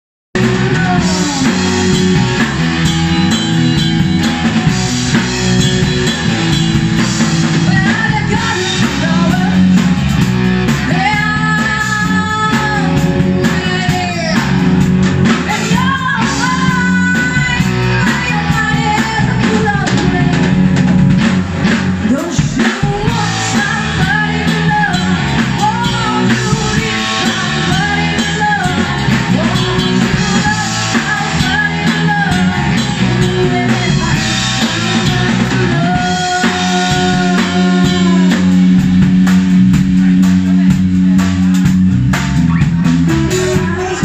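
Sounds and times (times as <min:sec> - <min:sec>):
drum kit: 0:00.4 - 0:44.0
guitar: 0:00.4 - 0:44.0
rock band playing live: 0:00.4 - 0:44.0.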